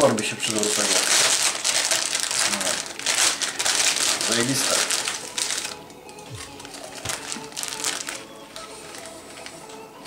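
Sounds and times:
plastic snack bag crinkling: 0:00.0 - 0:09.8.

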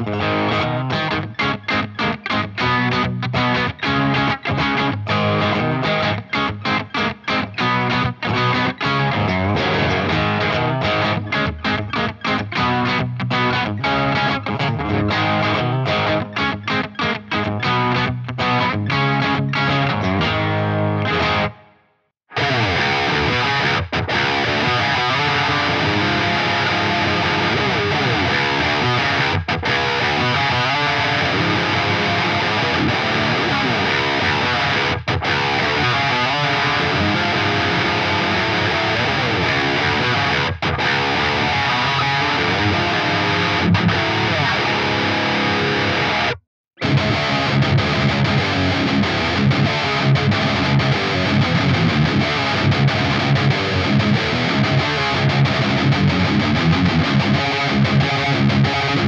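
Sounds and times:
distorted electric guitar riffing: 0:00.0 - 0:59.0.

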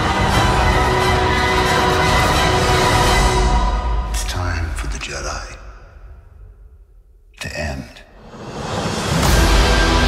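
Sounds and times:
orchestral music: 0:00.0 - 0:05.6, 0:08.2 - 0:10.0.

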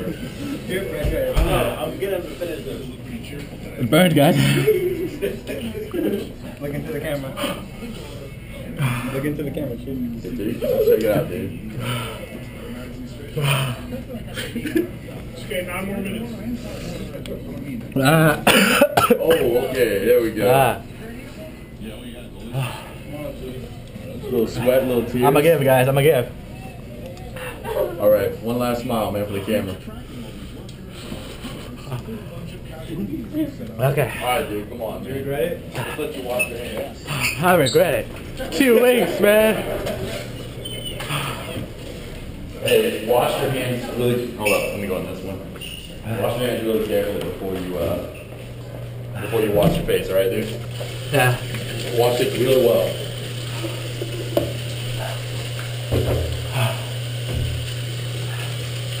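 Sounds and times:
indistinct background voices: 0:00.0 - 0:25.2, 0:38.0 - 0:59.0
room noise: 0:00.0 - 0:59.0
steady low hum: 0:45.1 - 0:59.0
tap water running into sink: 0:49.6 - 0:59.0.

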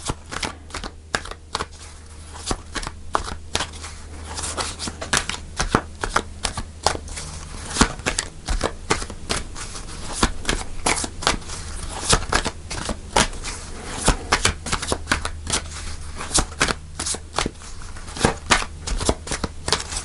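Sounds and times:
cards being shuffled: 0:00.0 - 0:20.0.

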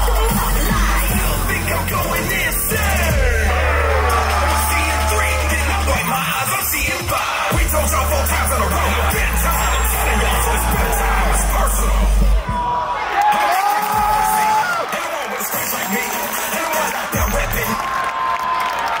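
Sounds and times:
music with heavy bass beat: 0:00.0 - 0:12.8, 0:13.6 - 0:17.9
crowd cheering and screaming: 0:00.0 - 0:19.0.

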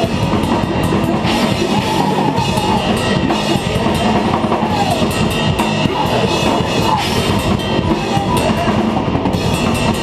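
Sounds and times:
drums pounding: 0:00.0 - 0:10.0
heavy metal band playing: 0:00.0 - 0:10.0.

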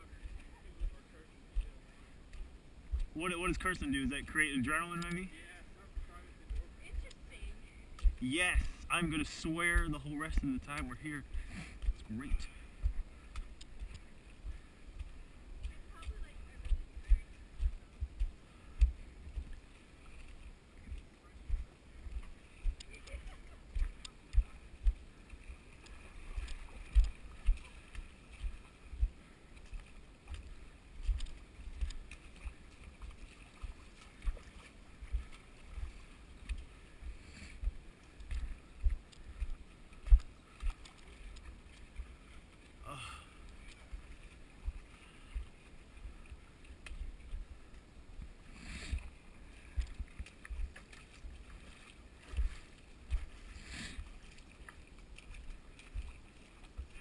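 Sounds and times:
footsteps sloshing through water: 0:00.0 - 0:57.0.

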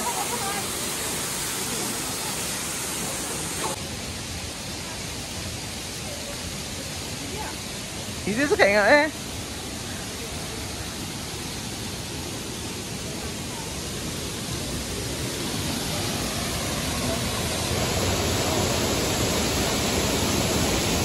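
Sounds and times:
waterfall rushing: 0:00.0 - 0:21.0.

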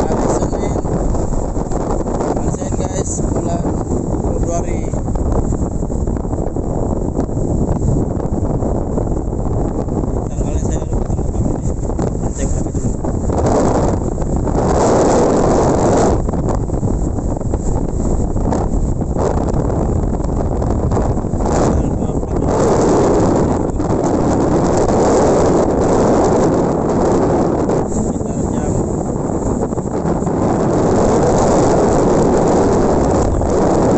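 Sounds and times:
wind buffeting microphone: 0:00.0 - 0:33.9.

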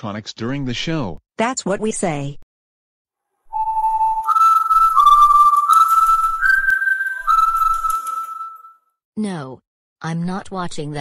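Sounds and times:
whistled tune: 0:03.5 - 0:08.9.

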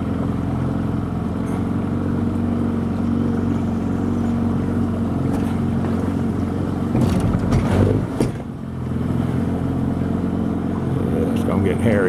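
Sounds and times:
outboard motor running: 0:00.0 - 0:12.0.

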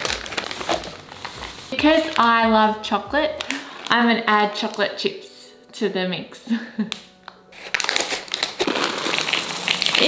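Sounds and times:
plastic packet crinkling: 0:00.0 - 0:05.0, 0:07.3 - 0:10.0
chocolate chips pouring into bowl: 0:07.9 - 0:10.0.

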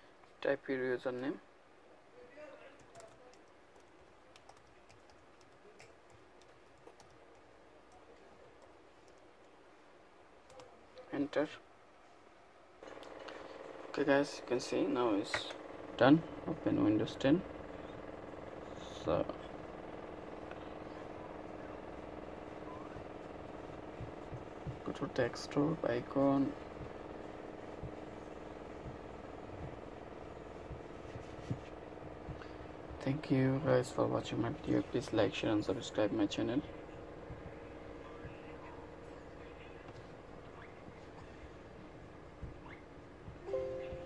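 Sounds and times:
low background hum: 0:00.0 - 0:44.0
laptop keyboard typing: 0:02.8 - 0:09.6.

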